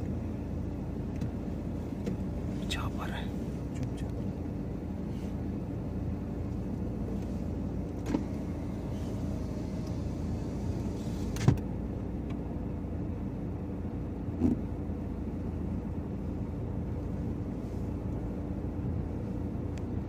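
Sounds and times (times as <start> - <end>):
car engine hum inside cabin: 0.0 - 20.0.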